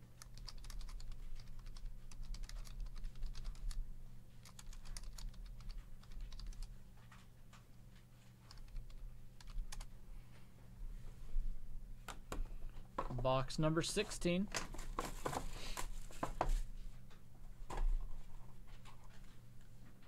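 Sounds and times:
computer keyboard typing: 0.0s - 3.8s, 4.4s - 6.8s, 8.4s - 9.9s
low electrical hum: 0.0s - 20.0s.

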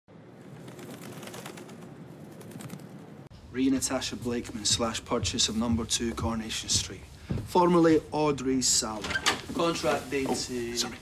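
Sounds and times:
steady background hiss: 3.3s - 11.0s.

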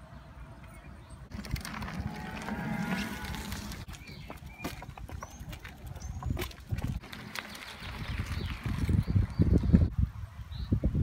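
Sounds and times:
wind buffeting microphone: 1.3s - 11.0s.

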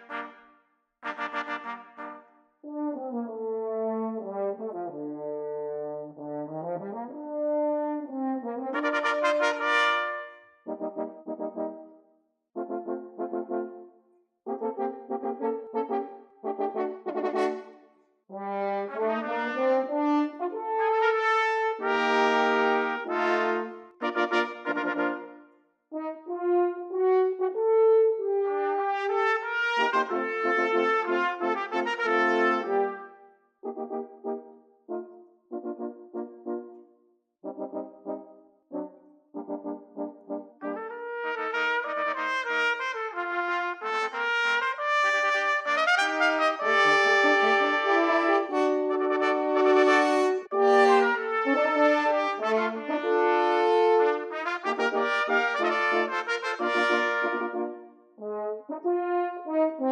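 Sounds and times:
brass ensemble playing chords: 0.0s - 0.4s, 1.0s - 3.2s, 8.0s - 11.8s, 12.6s - 13.8s, 14.5s - 17.8s, 18.6s - 25.4s, 26.1s - 36.8s, 37.4s - 59.9s.

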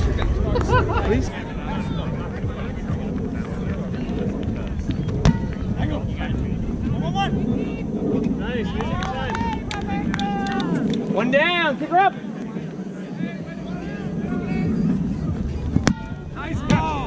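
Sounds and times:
wind rumbling on microphone: 0.0s - 17.0s
ball kick thump: 15.8s - 17.0s.

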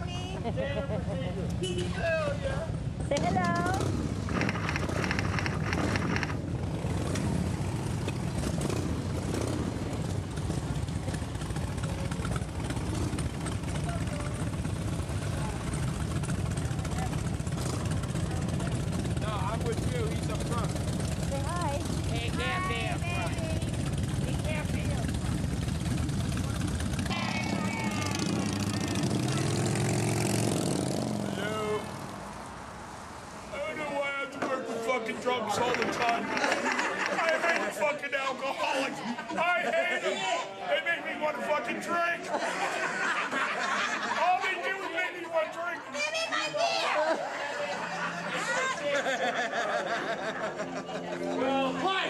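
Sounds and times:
motorcycle engines rumbling: 0.0s - 39.8s, 47.1s - 52.0s
voices calling: 9.3s - 52.0s.

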